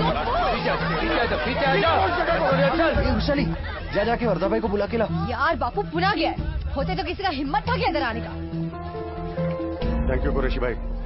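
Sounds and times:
babble of voices: 0.0 - 5.9
low bass film music: 0.0 - 11.0.

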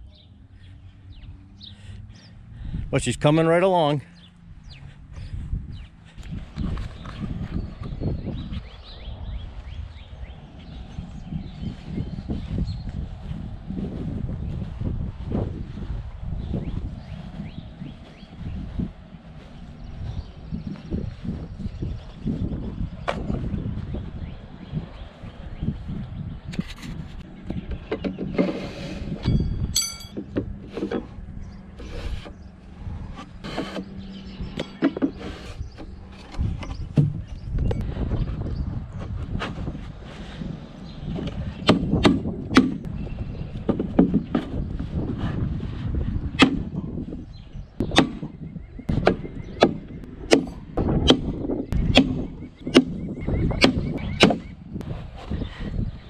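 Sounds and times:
metallic ringing strike: 29.3 - 30.2.

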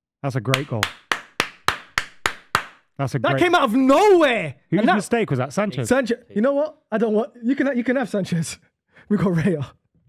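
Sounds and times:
person clapping slowly: 0.5 - 2.8.

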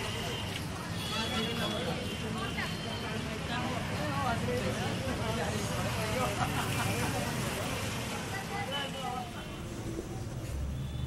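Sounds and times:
people talking: 0.0 - 10.7.

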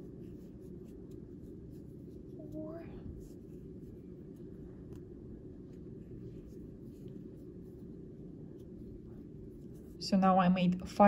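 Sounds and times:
crochet hook scratching yarn: 0.0 - 5.0, 5.7 - 10.0.

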